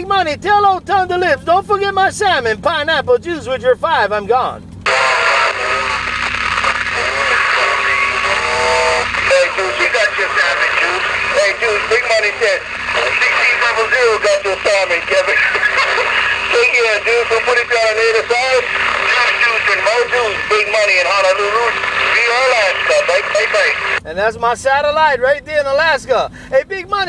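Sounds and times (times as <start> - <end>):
garbled radio voices: 1.2 - 25.8
radio band noise hiss: 4.9 - 24.0.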